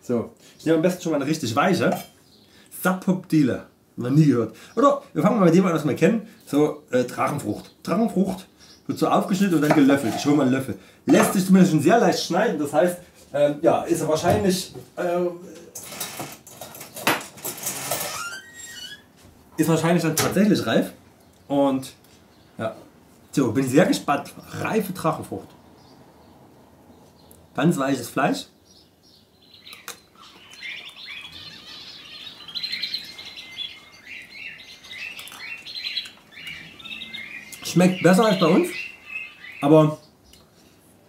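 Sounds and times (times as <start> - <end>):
small birds chirping: 0.1 - 15.6, 18.1 - 41.0.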